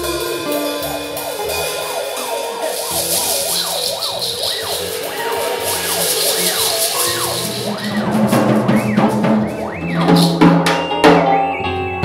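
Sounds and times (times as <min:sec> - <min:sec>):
cymbal wash: 0:00.0 - 0:11.0
theremin swooping: 0:00.0 - 0:11.6
band held notes and bass: 0:00.0 - 0:12.0.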